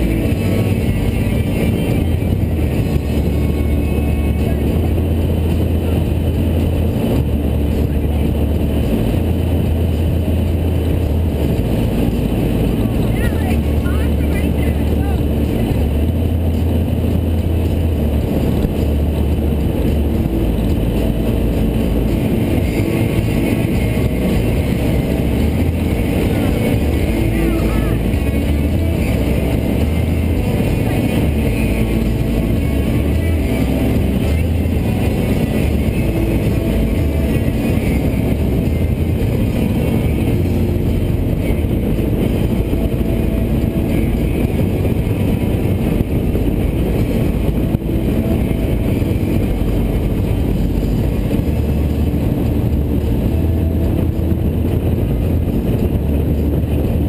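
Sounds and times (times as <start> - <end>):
motorboat engine rumble: 0.0 - 57.0.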